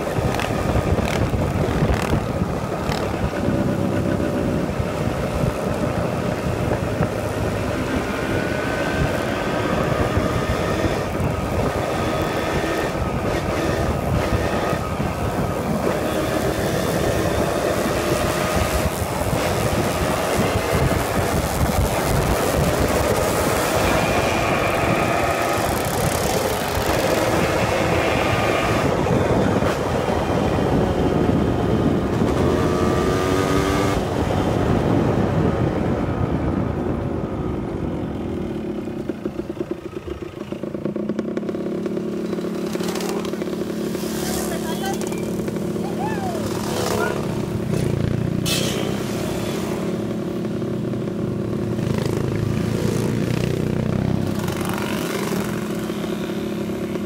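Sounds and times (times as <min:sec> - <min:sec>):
road and wind noise: 0:00.0 - 0:57.0
small motorcycle engines: 0:00.0 - 0:57.0.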